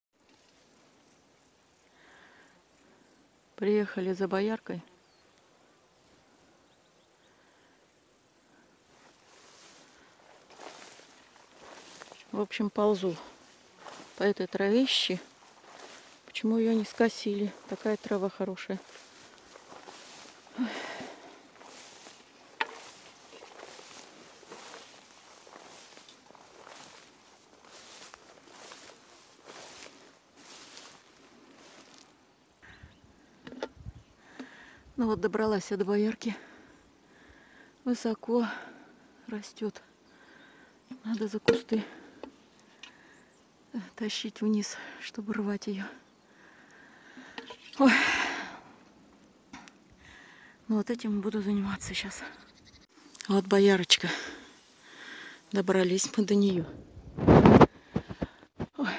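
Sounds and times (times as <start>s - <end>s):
high insect hum: 0.2s - 58.9s
footsteps swishing through grass: 9.0s - 32.2s
woman sighing: 20.5s - 21.3s, 47.8s - 48.6s.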